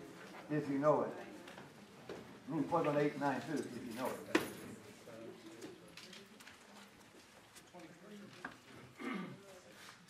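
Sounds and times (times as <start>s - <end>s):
light ticks and rustles: 5.4s - 8.9s.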